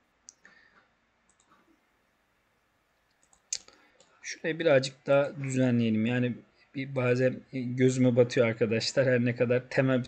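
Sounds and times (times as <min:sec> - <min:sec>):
computer mouse clicks: 0:01.3 - 0:01.7, 0:03.0 - 0:04.1.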